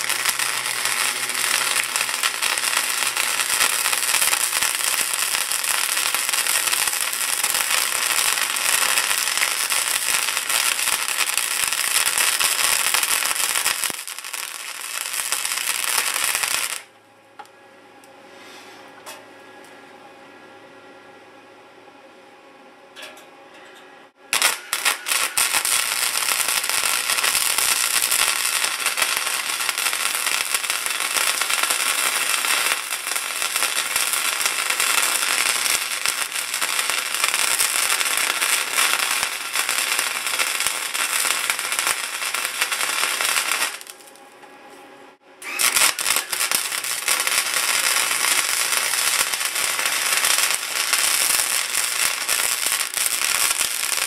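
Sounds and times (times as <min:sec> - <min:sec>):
welder arc crackling: 0:00.0 - 0:16.9, 0:24.3 - 0:44.3, 0:45.4 - 0:54.0.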